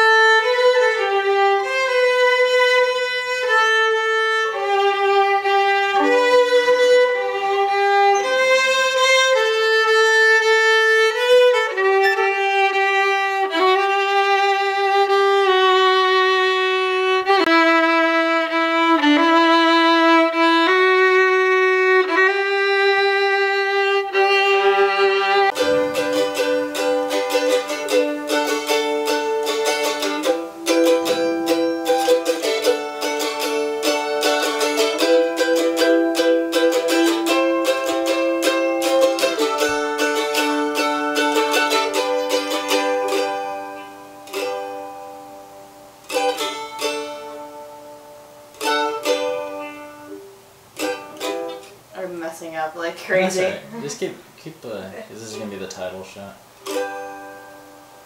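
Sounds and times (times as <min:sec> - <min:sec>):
violin bowed notes: 0:00.0 - 0:54.2
mandolin picking: 0:00.0 - 0:58.0.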